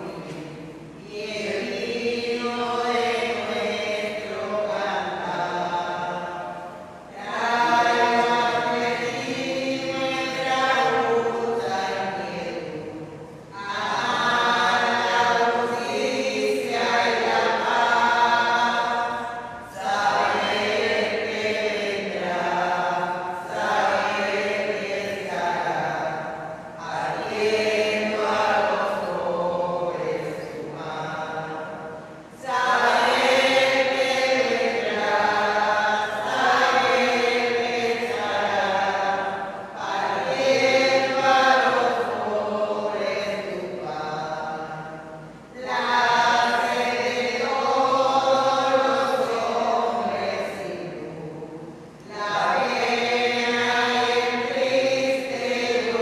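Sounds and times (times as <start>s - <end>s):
slow hymn singing: 0.0s - 56.0s.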